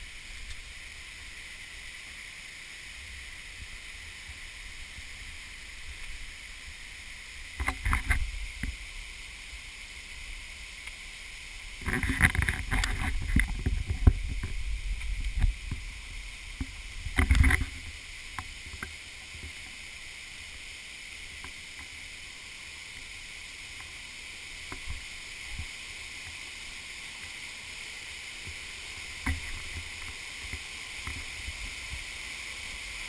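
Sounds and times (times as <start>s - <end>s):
waterfall rushing over rock: 0.0s - 33.0s.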